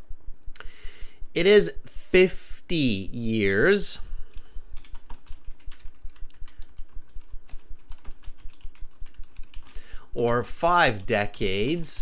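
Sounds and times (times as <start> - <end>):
typing on computer keyboard: 4.3 - 9.8.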